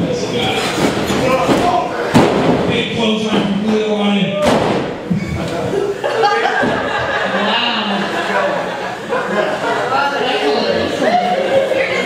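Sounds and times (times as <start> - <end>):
people's voices in echoing room: 0.0 - 12.0.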